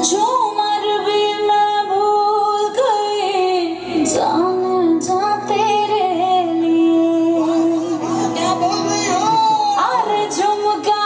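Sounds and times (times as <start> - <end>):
woman singing ornamented notes: 0.0 - 11.0.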